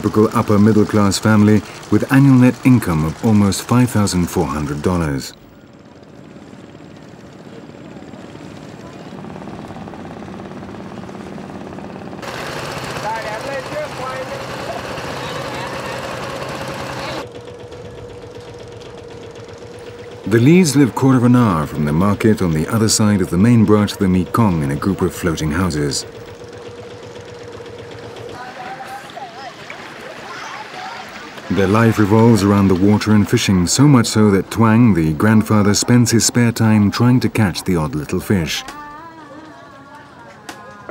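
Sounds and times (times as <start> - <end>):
voices: 0.0 - 5.8, 12.2 - 40.9
motorboat engine chugging: 0.0 - 40.9.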